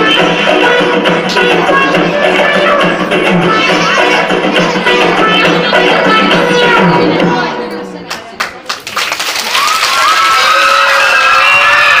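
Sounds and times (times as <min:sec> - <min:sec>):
dance music: 0:00.0 - 0:08.4
audience hand claps: 0:08.1 - 0:11.4.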